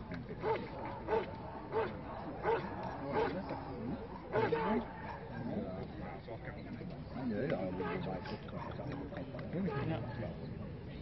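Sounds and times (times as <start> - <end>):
dog barking: 0.4 - 3.4.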